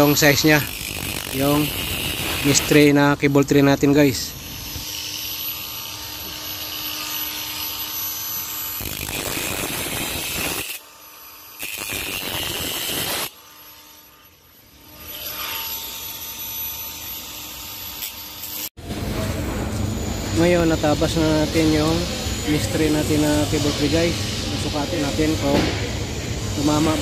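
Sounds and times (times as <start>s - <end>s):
angle grinder cutting wire: 0.0s - 18.8s, 20.1s - 27.0s.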